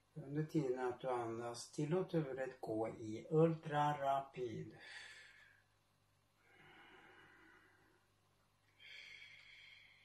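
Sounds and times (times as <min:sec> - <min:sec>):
man breathing slowly: 0:04.8 - 0:05.7, 0:06.4 - 0:08.1, 0:08.8 - 0:10.0.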